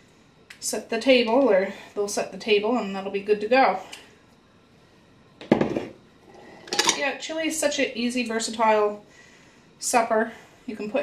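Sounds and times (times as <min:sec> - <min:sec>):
kitchenware clatter: 0:05.5 - 0:07.1.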